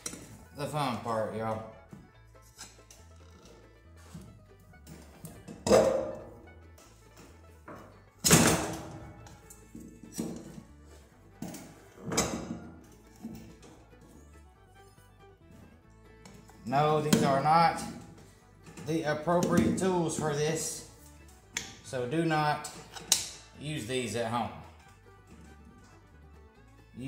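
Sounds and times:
quiet background music: 0.0 - 27.0.

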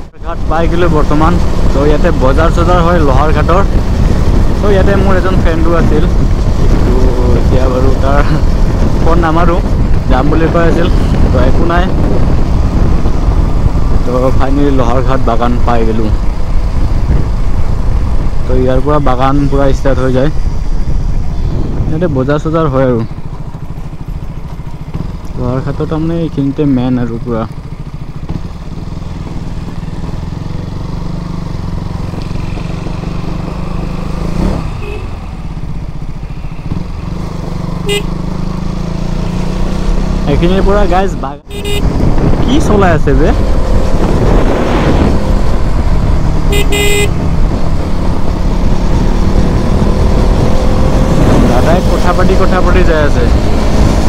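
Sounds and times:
motorcycle engine running: 0.0 - 54.0
horn toots: 34.4 - 35.4, 37.8 - 38.3, 41.4 - 42.0, 46.4 - 47.3.

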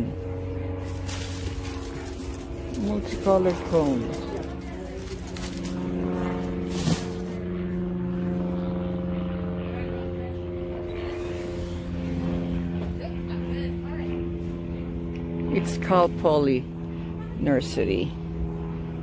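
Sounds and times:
steady motor drone: 0.0 - 19.0.

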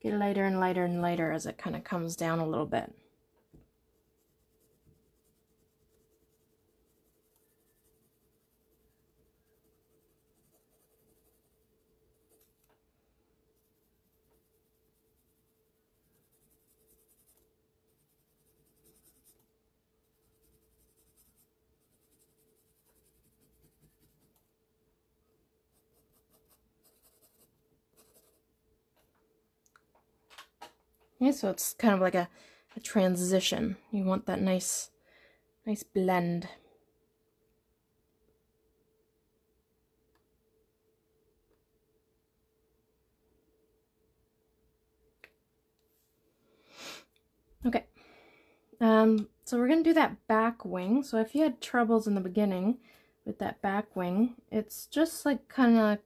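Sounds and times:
faint steady hum: 0.0 - 56.0
pencil scratching on paper: 3.9 - 12.7, 13.5 - 24.5, 25.7 - 28.5.

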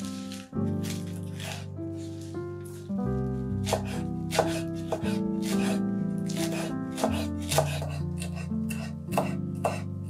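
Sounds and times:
knife chopping on wooden board: 0.0 - 1.6, 3.6 - 9.9.

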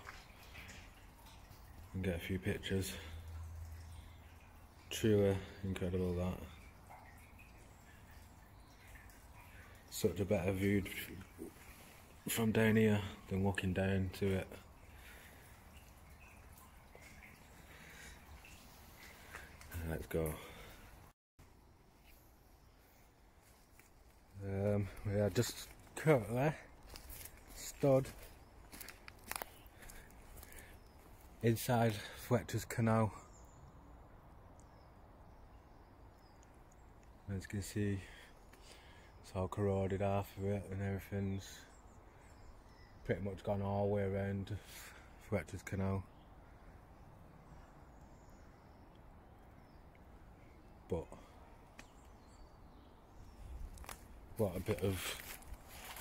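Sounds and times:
distant bird chirps: 0.0 - 56.0
footsteps on dry leaves: 26.8 - 31.2, 53.7 - 56.0.

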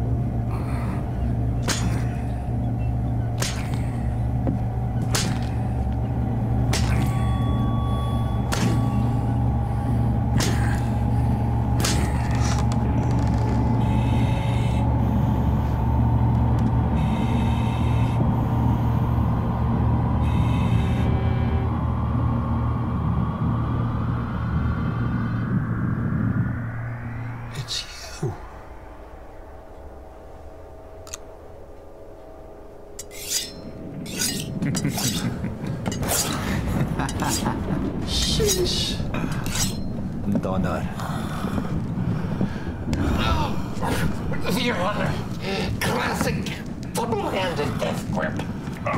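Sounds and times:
low rumbling drone: 0.0 - 48.9
metallic scrapes and clinks: 33.0 - 35.3.

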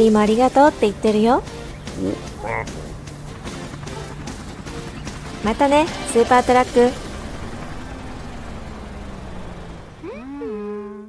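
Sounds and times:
cartoon helicopter rotors drone: 0.0 - 11.0.

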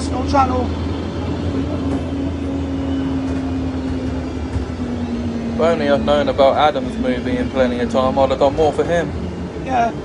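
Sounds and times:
road and motor noise: 0.0 - 10.0.

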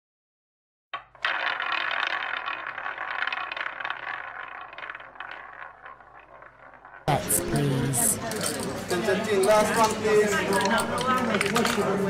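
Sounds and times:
small hard objects rattling: 1.2 - 7.1.

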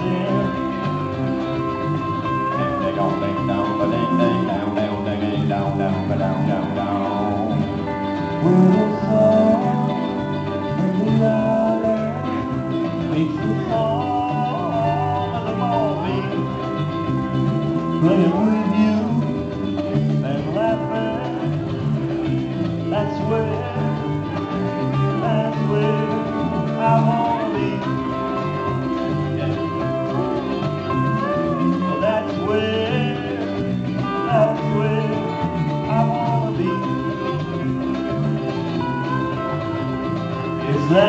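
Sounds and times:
electric bass: 0.0 - 41.0
sliding held lead notes: 0.0 - 41.0
strummed ukulele: 0.0 - 41.0.

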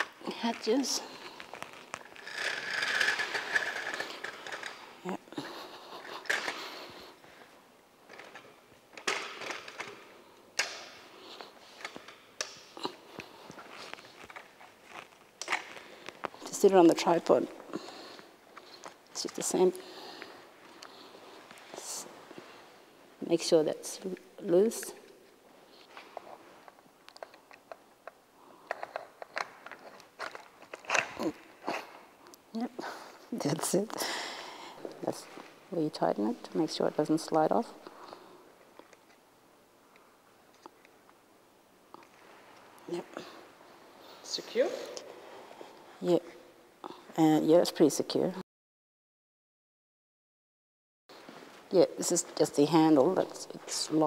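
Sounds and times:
metal leg sections sliding: 0.0 - 4.9
plastic clicks and rattles: 8.1 - 10.0, 27.1 - 31.2.

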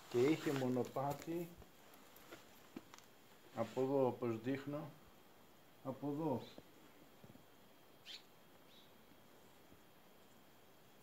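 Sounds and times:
small bird chirping: 8.0 - 9.0.

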